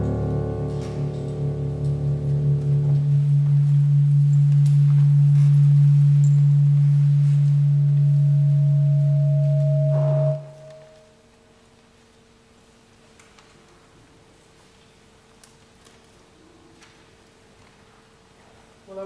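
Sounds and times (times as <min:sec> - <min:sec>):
music chord: 0:00.0 - 0:11.2
low held tone: 0:00.0 - 0:11.3.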